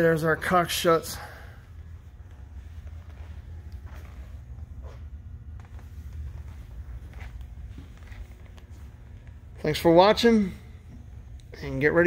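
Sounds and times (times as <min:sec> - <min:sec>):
low room rumble: 0:00.0 - 0:12.0
faint footsteps: 0:01.6 - 0:11.5.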